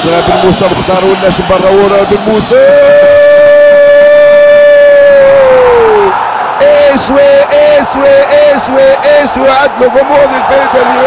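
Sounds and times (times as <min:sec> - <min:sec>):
commentator's excited cry: 0:02.5 - 0:11.0.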